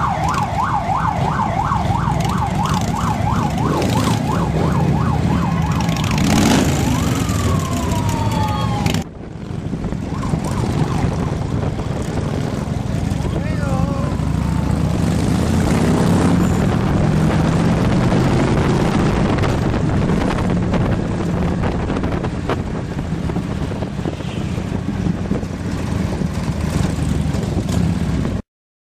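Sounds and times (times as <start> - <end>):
motorcycle engines rumbling: 0.0 - 28.4.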